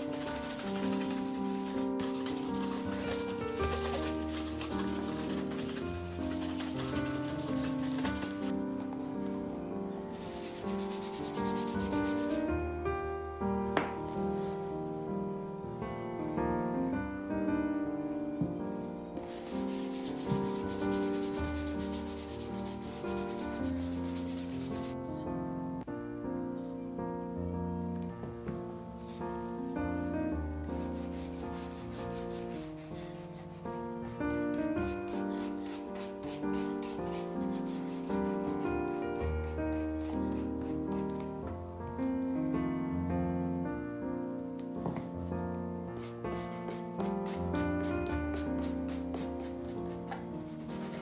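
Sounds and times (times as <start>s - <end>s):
brush scrubbing leather shoe: 0.0s - 8.5s, 19.2s - 25.0s, 30.8s - 41.0s, 46.0s - 49.9s
soft background music: 0.0s - 51.0s.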